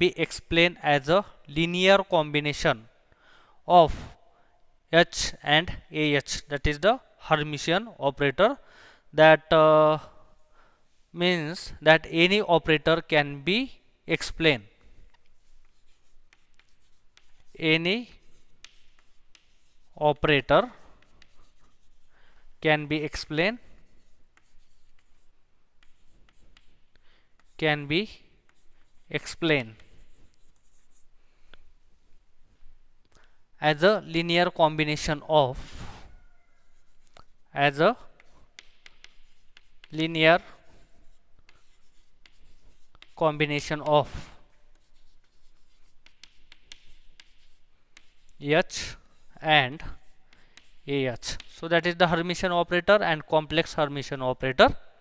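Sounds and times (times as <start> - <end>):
chalk scratching on chalkboard: 14.2 - 31.2, 35.0 - 52.1
chalk tapping on board: 15.1 - 20.0, 20.8 - 22.1, 23.2 - 27.6, 28.4 - 31.1, 38.1 - 40.0, 40.6 - 48.4, 50.0 - 51.6.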